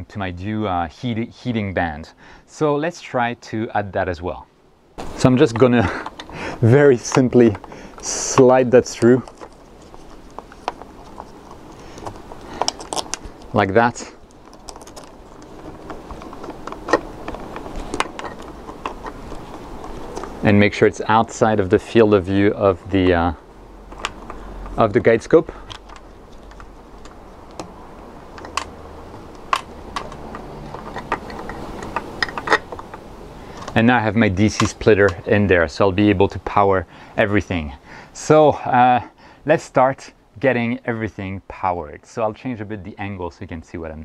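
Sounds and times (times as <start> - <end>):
low steady hum: 0.0 - 44.0
hands handling plastic device clicks: 5.6 - 6.4, 7.0 - 13.6, 23.9 - 24.8, 25.6 - 33.0, 33.6 - 33.8.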